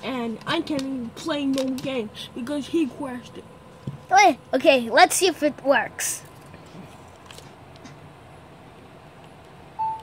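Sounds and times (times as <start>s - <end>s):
electronic beep from a tablet: 9.8s - 10.0s.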